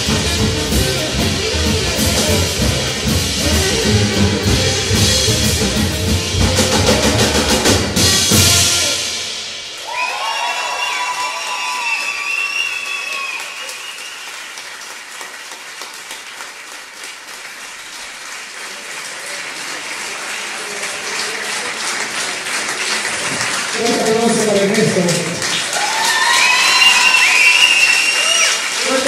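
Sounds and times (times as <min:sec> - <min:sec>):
audience applause: 0:09.7 - 0:29.0.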